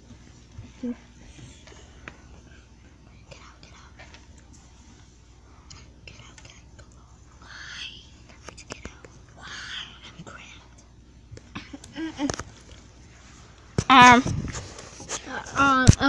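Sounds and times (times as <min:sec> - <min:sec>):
person whispering: 0:05.7 - 0:10.7.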